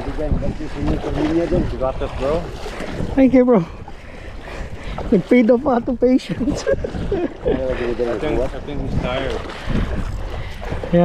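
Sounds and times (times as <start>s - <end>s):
wind rumble on microphone: 0.0s - 11.0s
voices talking: 5.0s - 9.6s.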